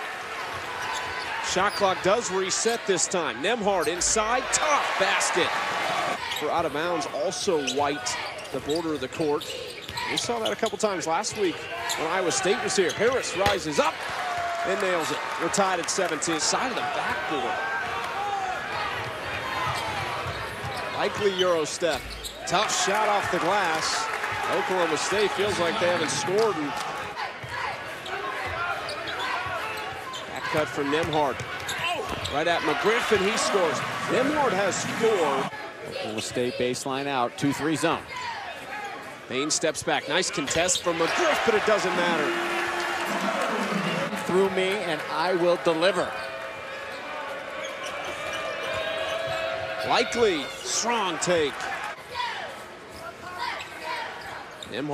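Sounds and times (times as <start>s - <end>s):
faint crowd voices: 0.0s - 54.9s.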